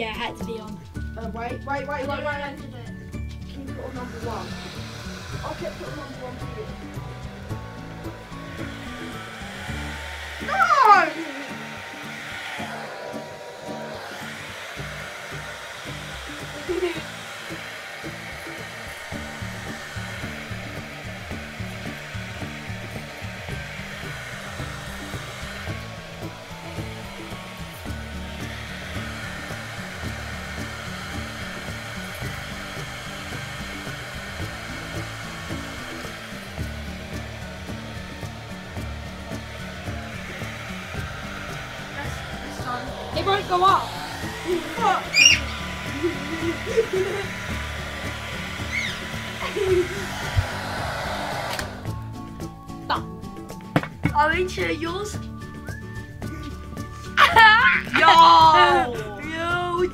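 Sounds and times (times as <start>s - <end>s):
hair dryer blowing: 0.0s - 59.9s
music playing: 0.0s - 59.9s.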